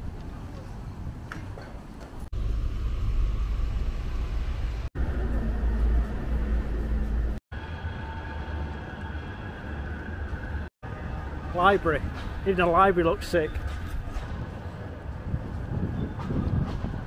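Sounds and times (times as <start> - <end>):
low traffic rumble: 0.0 - 17.0.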